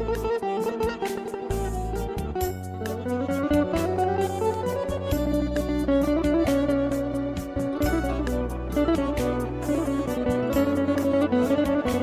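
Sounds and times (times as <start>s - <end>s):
keyboard bass: 0.0s - 0.4s, 1.5s - 12.0s
plucked strings: 0.0s - 12.0s.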